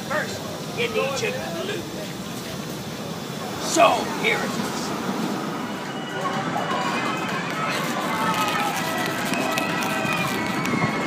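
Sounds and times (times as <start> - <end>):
indistinct voices: 0.0 - 11.0
carousel music: 3.3 - 11.0.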